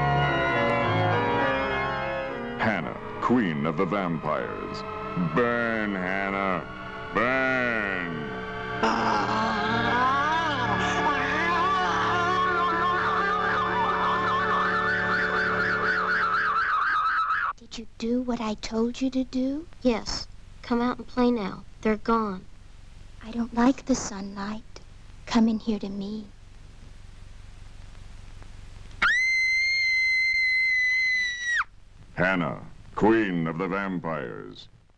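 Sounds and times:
low drone: 0:00.0 - 0:16.8
shrill high-pitched scream: 0:13.0 - 0:17.5, 0:29.0 - 0:31.7.

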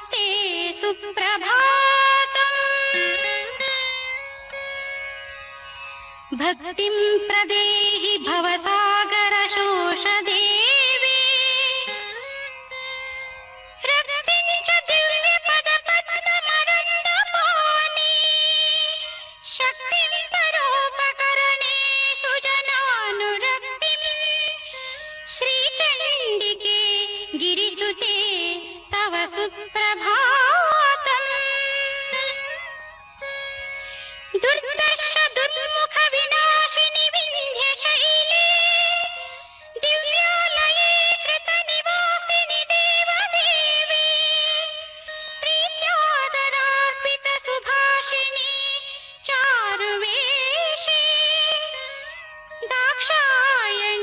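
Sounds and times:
person singing ornamented notes: 0:00.0 - 0:03.8.

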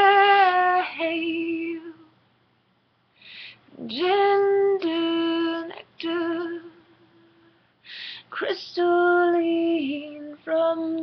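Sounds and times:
woman singing unaccompanied: 0:00.0 - 0:02.2, 0:03.6 - 0:07.6, 0:08.2 - 0:11.0.

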